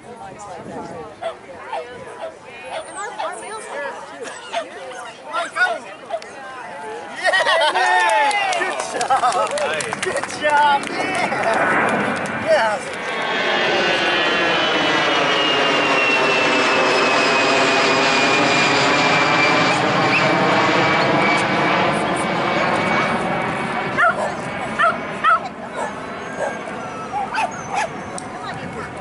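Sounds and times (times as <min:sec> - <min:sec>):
jet aircraft passing overhead: 0:08.4 - 0:29.0
dog barking: 0:24.0 - 0:28.0.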